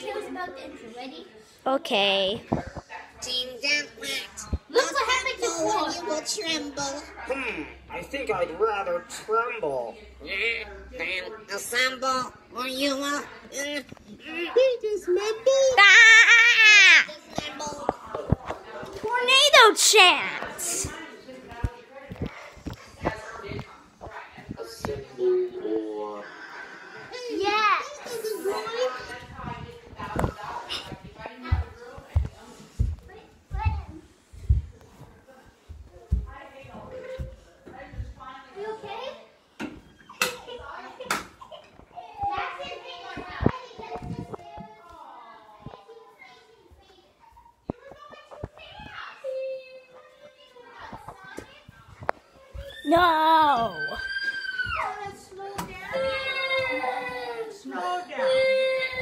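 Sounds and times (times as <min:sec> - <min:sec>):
children shouting while playing: 0:52.6 - 0:55.0.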